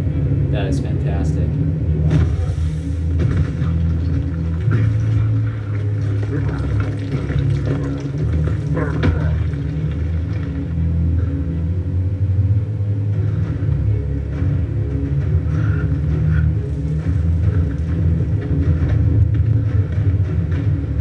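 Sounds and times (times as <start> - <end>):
heavy low rumble: 0.0 - 21.0.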